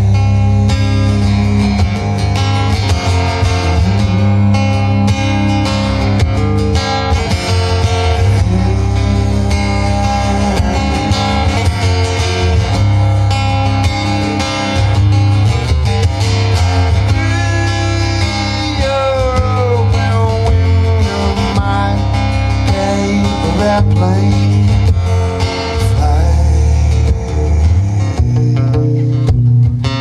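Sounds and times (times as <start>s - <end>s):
acoustic guitar folk song: 0.0s - 30.0s.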